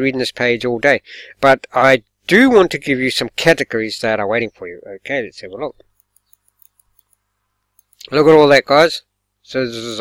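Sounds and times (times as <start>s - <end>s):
mouse scroll wheel ticking: 5.8s - 7.2s, 7.8s - 8.0s.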